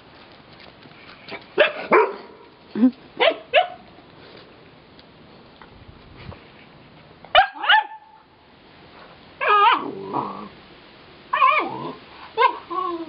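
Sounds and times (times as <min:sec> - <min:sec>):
dog barking: 0:01.6 - 0:02.4, 0:03.2 - 0:03.8, 0:07.3 - 0:08.2.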